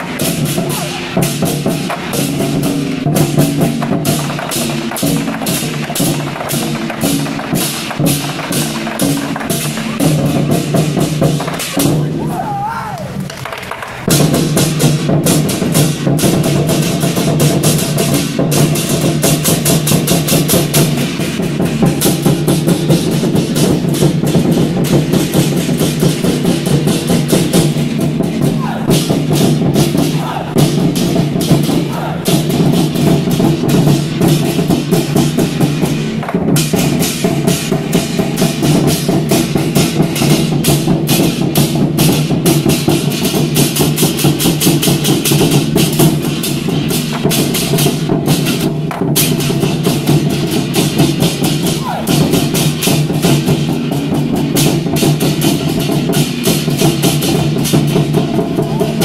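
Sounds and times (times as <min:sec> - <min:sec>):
barrel drums beaten fast: 0:00.0 - 0:59.0.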